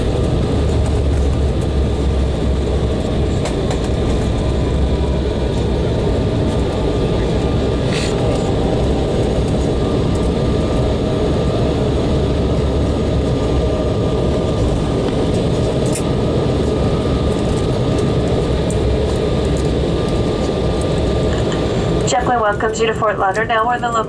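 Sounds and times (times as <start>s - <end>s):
airplane cabin rumble: 0.0s - 24.0s
jet engine whine: 0.0s - 24.0s.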